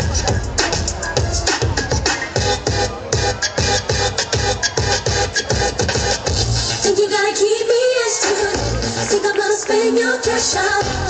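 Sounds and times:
heavy bass drum beat: 0.0 - 6.8, 8.5 - 9.2, 10.8 - 11.0
loud dance music: 0.0 - 11.0.

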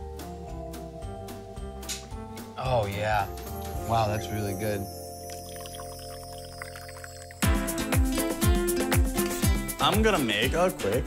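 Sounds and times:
background music with held notes: 0.0 - 11.0
liquid pouring into glass of ice: 4.9 - 7.4.

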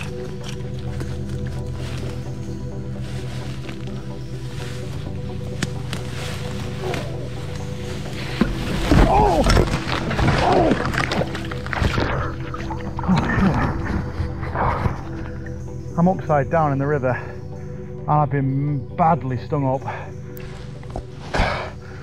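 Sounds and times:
background music: 0.0 - 22.0
body falling into river: 8.1 - 14.3.

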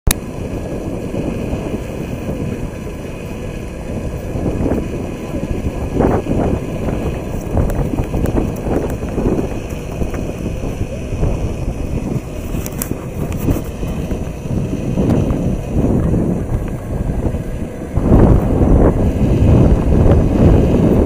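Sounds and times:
low rumble: 0.1 - 21.0
crowd voices: 4.7 - 19.2.

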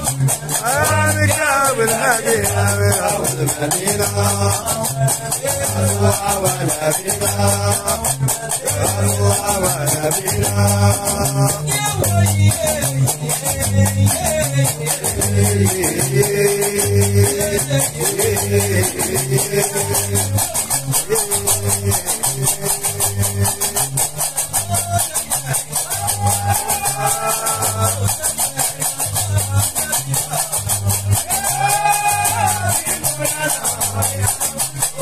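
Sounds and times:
man singing: 0.0 - 35.0
plucked bass lute: 0.0 - 35.0.

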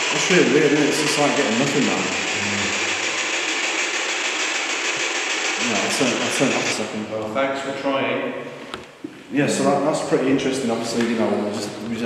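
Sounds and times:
radio static hiss: 0.0 - 7.0
fast radio sweep chatter: 0.0 - 7.1.

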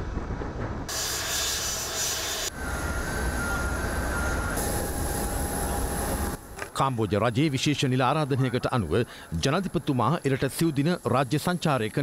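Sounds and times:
jet engines running: 0.0 - 6.7.

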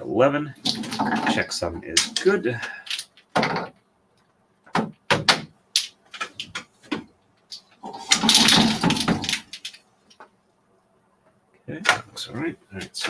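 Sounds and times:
wooden bobbins clacking: 4.6 - 10.3
sliding rattle of bobbins: 7.6 - 9.8.

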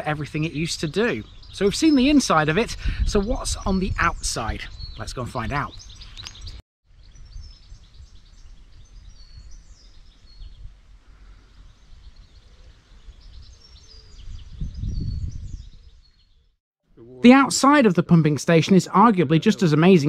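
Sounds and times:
small birds chirping: 0.0 - 17.2.

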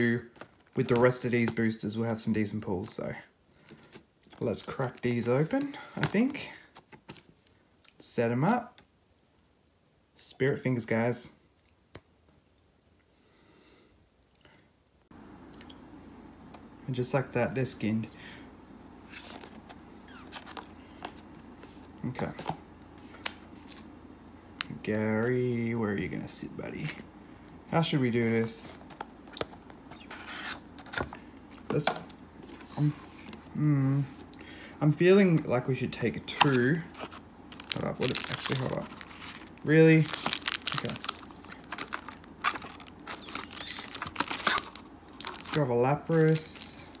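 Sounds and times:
cardboard boxes rustling: 36.3 - 47.0
foil wrappers crinkling: 36.3 - 47.0.

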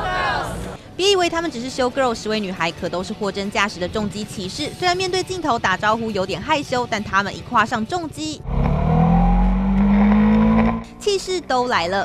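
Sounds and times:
motorcycle engine revving: 8.4 - 11.0.

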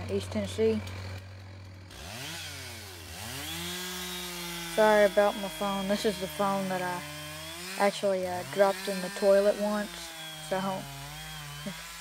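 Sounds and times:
chainsaw engine revving: 0.0 - 12.0.

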